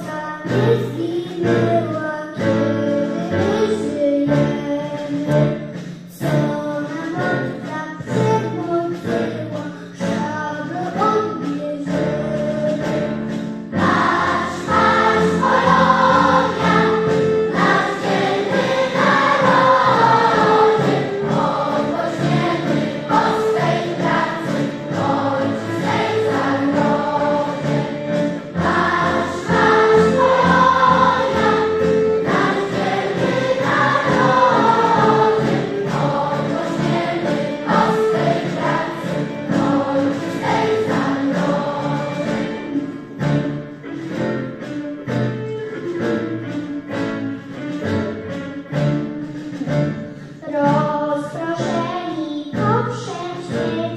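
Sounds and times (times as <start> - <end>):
instrumental accompaniment: 0.0 - 53.9
mixed choir singing: 13.8 - 42.9.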